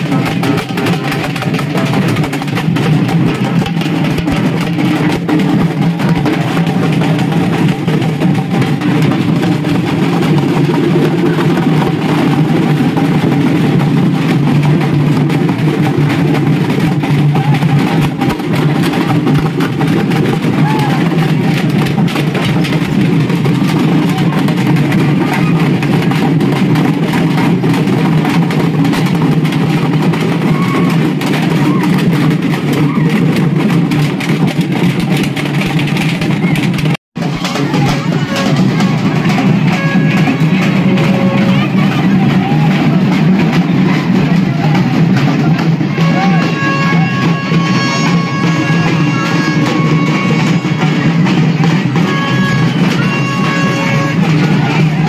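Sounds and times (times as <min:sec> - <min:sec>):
crowd voices: 0:00.0 - 0:55.0
frame drums beaten fast: 0:00.0 - 0:55.0.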